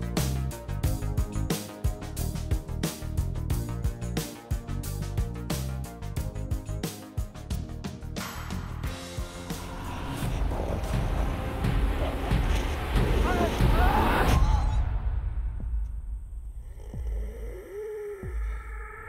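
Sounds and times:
dramatic trailer music: 0.0s - 17.6s
low rumble: 9.2s - 19.0s.

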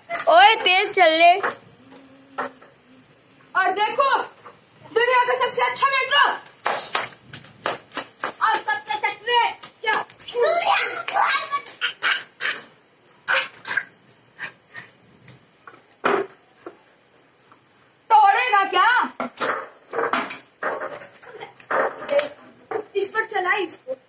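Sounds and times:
sharp slaps and knocks: 6.6s - 8.9s, 9.6s - 11.8s
children calling out: 8.5s - 13.9s.

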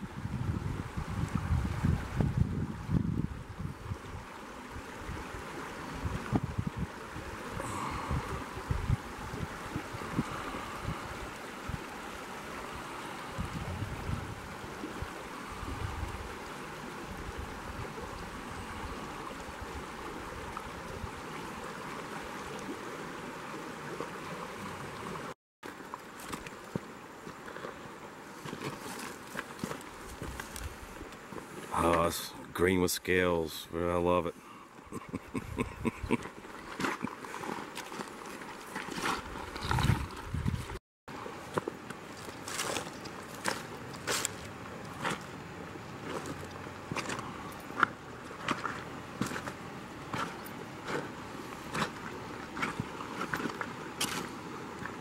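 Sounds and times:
wind buffeting microphone: 0.0s - 4.2s, 5.9s - 11.9s, 13.2s - 16.4s, 39.3s - 40.8s
river water rushing over stones: 0.1s - 35.4s, 36.1s - 40.4s, 41.1s - 55.0s.

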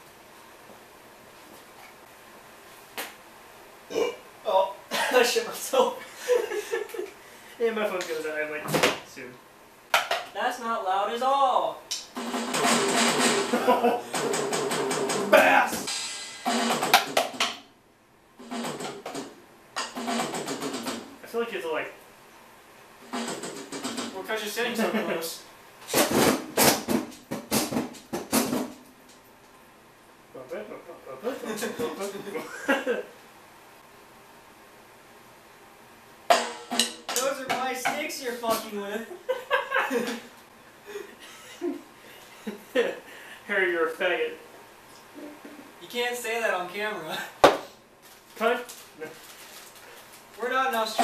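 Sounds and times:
faint room noise: 0.0s - 51.0s
electronic drum hits: 12.2s - 17.6s.

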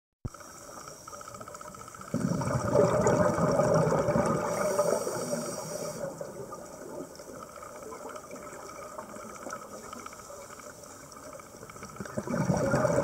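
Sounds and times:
low underwater hiss: 0.3s - 13.0s
diver's exhaled breath bubbling: 2.1s - 6.6s, 12.0s - 13.0s.

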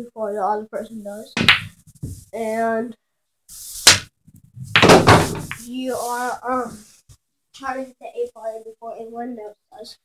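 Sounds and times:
pool cue striking ball: 1.4s - 1.7s, 4.8s - 5.7s
billiard balls colliding: 1.4s - 2.2s, 3.8s - 5.7s.

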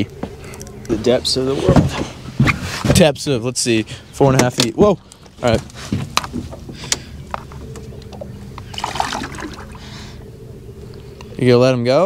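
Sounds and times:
water splashing and sloshing: 8.1s - 10.2s.

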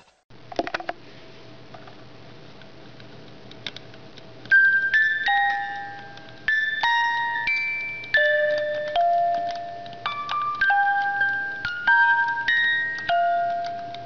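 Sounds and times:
music box melody: 4.5s - 14.0s.

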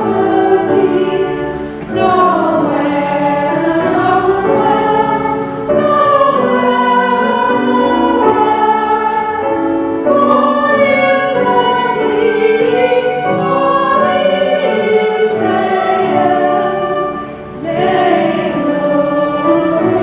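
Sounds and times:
grand piano: 0.0s - 20.0s
small choir singing a carol: 0.0s - 20.0s.

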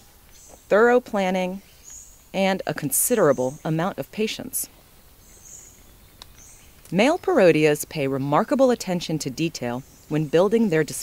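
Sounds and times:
faint rainforest ambience: 0.0s - 11.0s.

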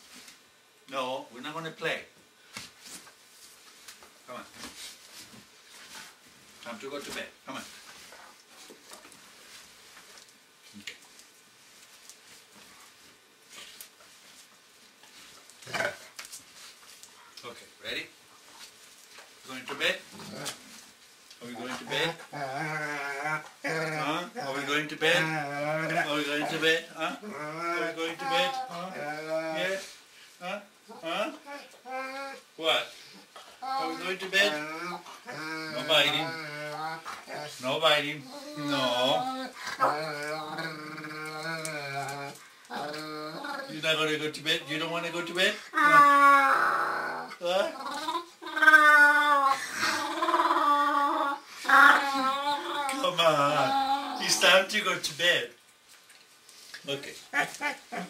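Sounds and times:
dog growling: 15.6s - 16.1s, 19.7s - 20.8s, 21.4s - 54.5s.

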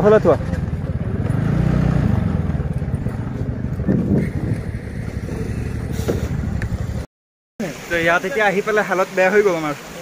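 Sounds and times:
motorcycle engine running: 0.0s - 7.1s.

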